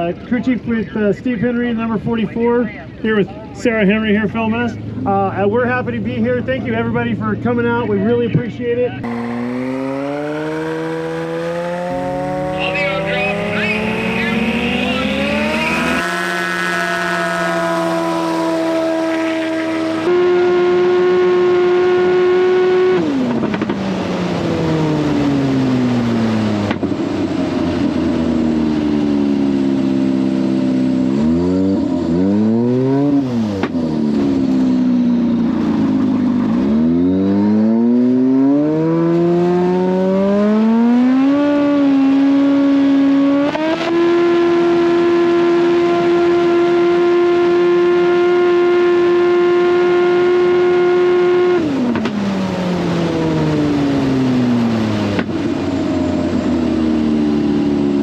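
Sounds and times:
propeller plane engine: 9.0 - 42.2, 49.3 - 58.0.

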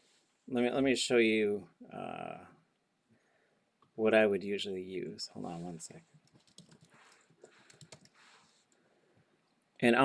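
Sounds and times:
computer keyboard typing: 6.1 - 8.2.

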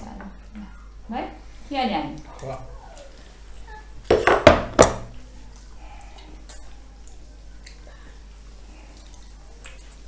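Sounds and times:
bowl knocking on table: 4.1 - 5.1.

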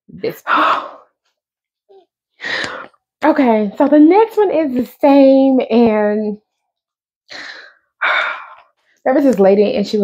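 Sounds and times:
woman breathing: 2.3 - 3.0, 7.3 - 9.0.

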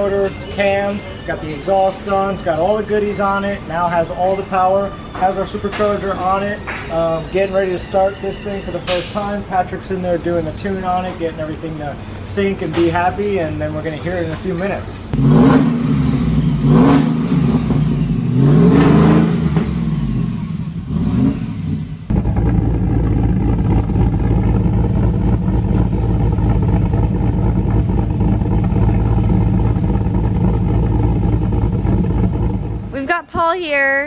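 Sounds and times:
engine revving and idling: 15.1 - 33.0.

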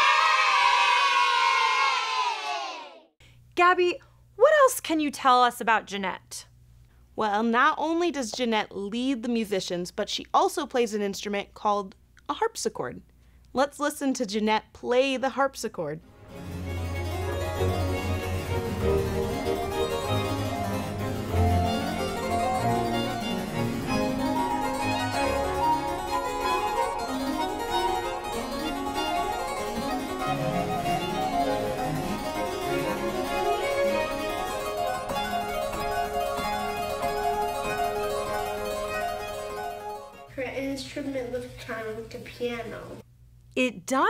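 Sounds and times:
harpsichord playing: 16.1 - 40.3.

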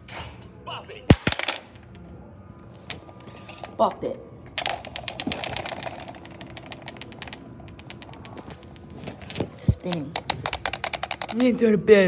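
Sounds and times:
plastic toy clicking on concrete: 4.6 - 8.4, 9.8 - 11.8.

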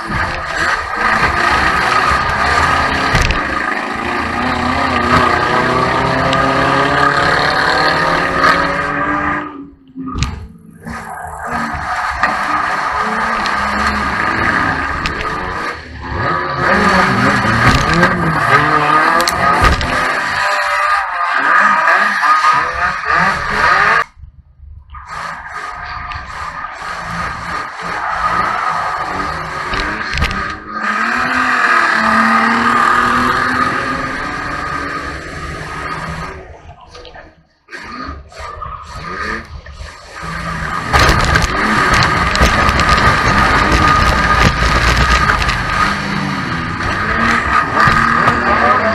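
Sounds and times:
race car engine revving: 0.0 - 24.2, 24.9 - 36.6, 37.7 - 48.9
tyres skidding: 0.0 - 24.2, 24.9 - 48.9.

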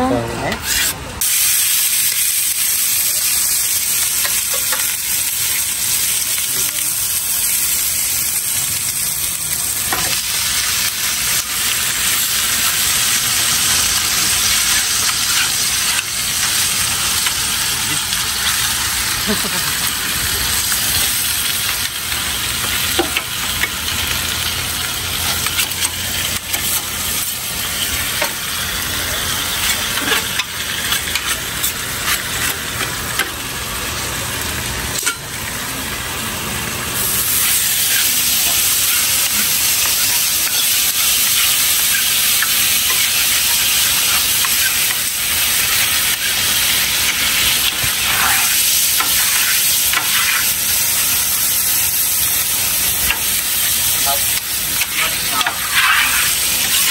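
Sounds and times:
food sizzling on a griddle: 0.1 - 56.9
metal utensils scraping: 47.1 - 50.5, 54.0 - 56.9.

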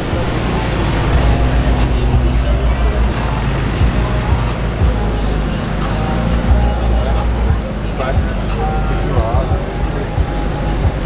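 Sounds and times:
car engine rumbling: 0.0 - 11.0
music: 0.0 - 11.0
people's voices: 0.0 - 11.0.

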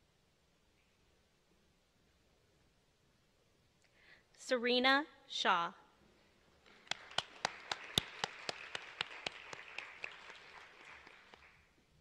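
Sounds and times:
person clapping close to microphone: 6.6 - 11.7
audience applauding: 6.6 - 11.8.

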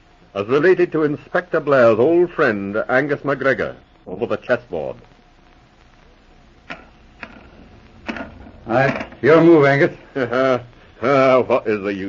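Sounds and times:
old radio recording hiss: 0.0 - 12.0.

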